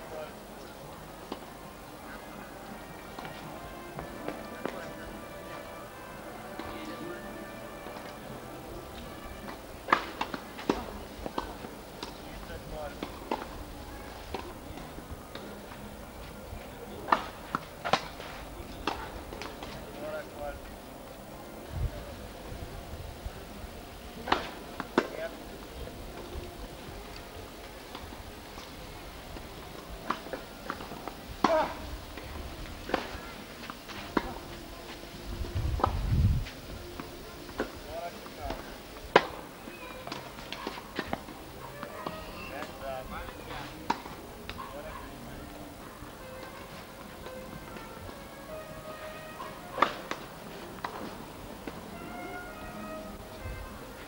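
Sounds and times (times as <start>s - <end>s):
faint voices: 0.0s - 54.0s
music: 0.0s - 54.0s
tennis ball struck by rackets: 9.4s - 12.2s, 17.0s - 19.7s, 24.2s - 25.2s, 49.7s - 50.2s.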